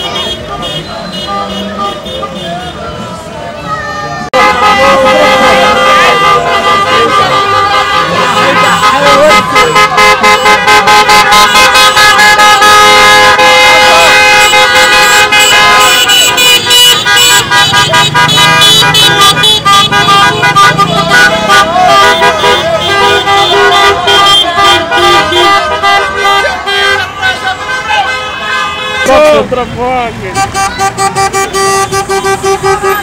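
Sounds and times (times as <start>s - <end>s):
car horns honking: 0.0s - 3.4s, 4.2s - 33.0s
voices shouting: 0.0s - 33.0s.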